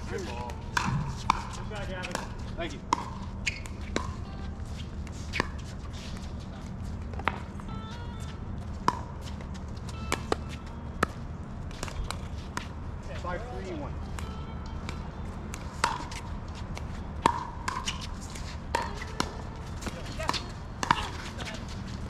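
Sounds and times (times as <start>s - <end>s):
low background hum: 0.0s - 22.0s.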